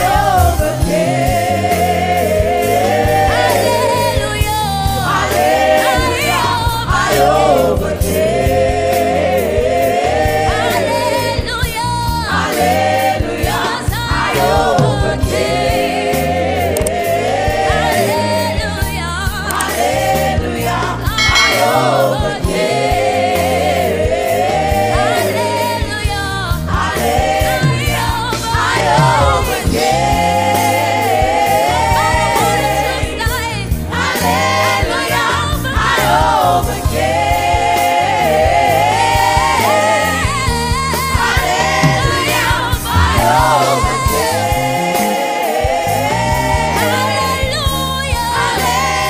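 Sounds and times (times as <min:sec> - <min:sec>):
bass line: 0:00.0 - 0:01.6, 0:26.6 - 0:30.4, 0:40.2 - 0:44.9
drum kit with cymbals: 0:00.0 - 0:49.0
gospel choir singing: 0:00.0 - 0:49.0.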